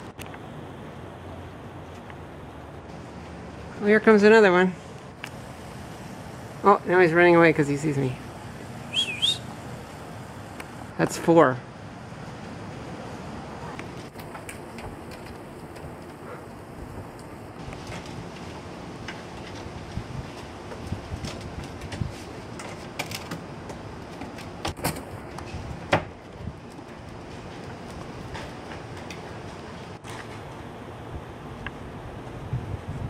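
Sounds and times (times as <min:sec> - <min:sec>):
steady outdoor hiss: 0:00.0 - 0:33.0.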